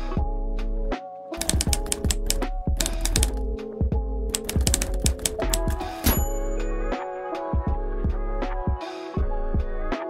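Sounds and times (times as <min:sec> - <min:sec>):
background music: 0:00.0 - 0:10.0
typewriter key clacks: 0:01.4 - 0:03.4, 0:04.3 - 0:06.2.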